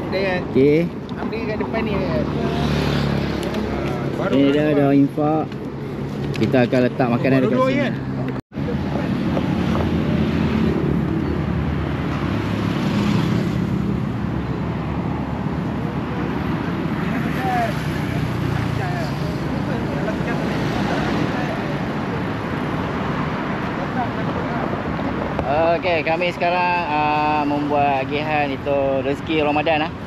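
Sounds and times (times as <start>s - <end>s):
road traffic passing: 0.0s - 30.0s.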